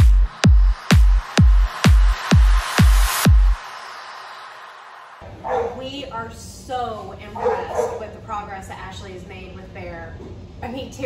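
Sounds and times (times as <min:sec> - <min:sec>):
dog whining and yipping: 0:05.5 - 0:05.8, 0:07.4 - 0:08.0
woman's voice: 0:05.6 - 0:11.0.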